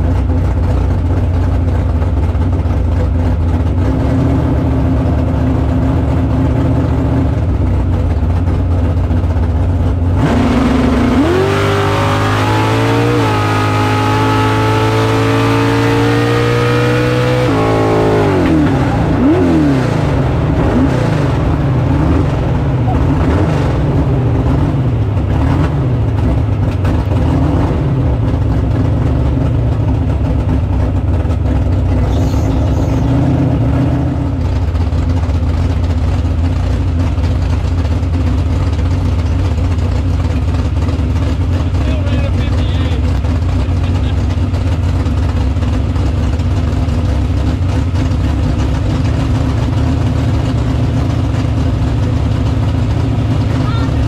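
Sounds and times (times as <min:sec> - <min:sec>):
car engine revving and idling: 0:00.0 - 0:54.0.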